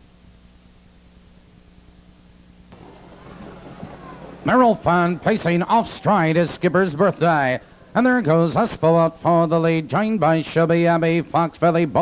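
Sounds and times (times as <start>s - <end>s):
faint hiss: 0.0s - 12.0s
faint noisy background: 0.0s - 12.0s
steady electrical hum: 0.0s - 12.0s.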